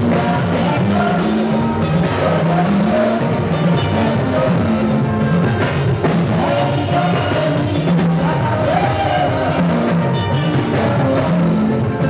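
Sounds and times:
live band music through speakers: 0.0s - 12.0s.

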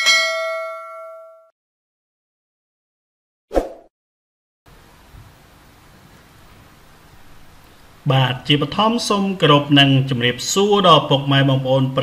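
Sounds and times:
bright bell ding: 0.0s - 1.5s.

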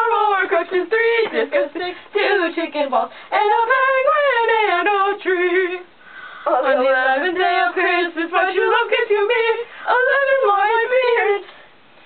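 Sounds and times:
young woman singing: 0.0s - 11.6s.

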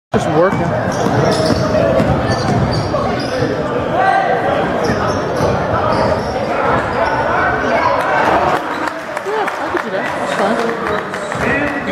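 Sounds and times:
spectators' voices: 0.2s - 11.9s
basketball bouncing on hardwood: 0.6s - 2.9s.

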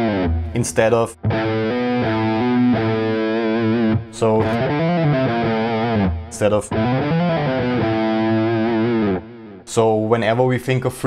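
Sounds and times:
distorted electric guitar notes: 0.0s - 9.7s.

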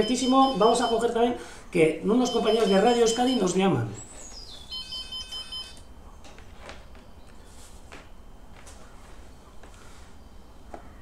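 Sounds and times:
mobile phone ringtone: 0.0s - 1.2s, 2.2s - 3.6s, 4.7s - 5.9s.

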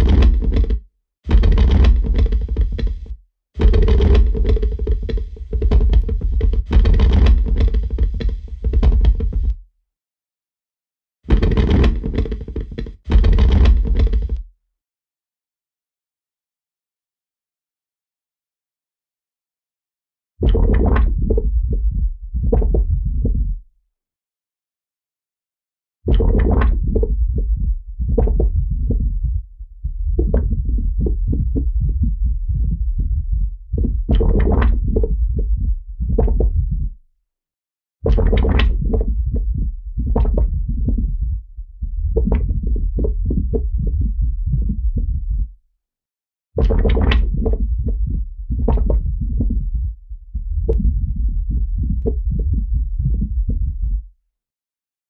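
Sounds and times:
deep low rumble: 20.5s - 23.6s, 26.2s - 37.1s, 38.1s - 45.6s, 46.6s - 54.1s.

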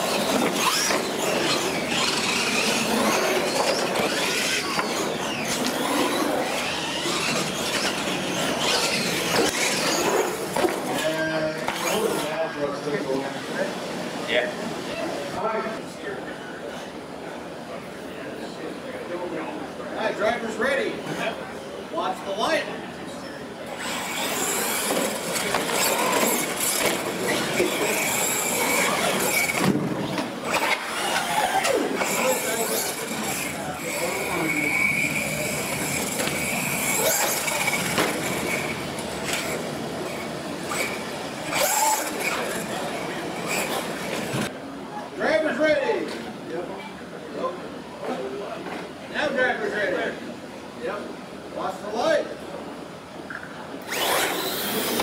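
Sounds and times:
toy truck motor and gear whine: 0.0s - 12.4s, 23.7s - 44.5s, 53.8s - 55.0s
people talking: 0.0s - 29.8s, 31.0s - 53.6s.

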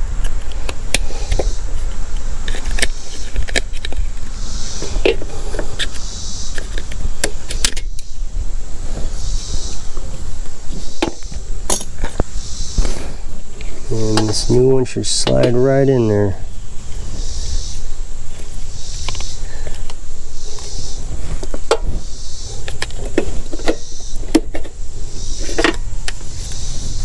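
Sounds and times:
steady low rumble: 0.0s - 27.0s
pliers clicking and scraping plastic: 2.5s - 4.0s.

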